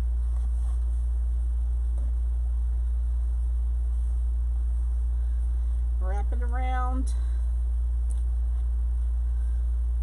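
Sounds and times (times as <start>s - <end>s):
faint rustles: 0.0s - 6.0s
faint pulsing buzz: 0.0s - 10.0s
low electrical hum: 0.0s - 10.0s.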